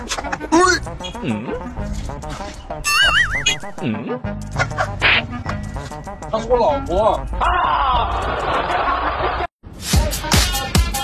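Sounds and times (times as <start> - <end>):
background music: 0.0 - 9.0, 9.7 - 11.0
warbling comedy sound effect: 2.8 - 4.2.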